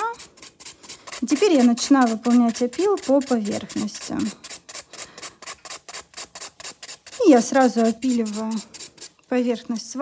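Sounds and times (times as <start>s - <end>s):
nail file rasping on nail: 0.0s - 9.2s.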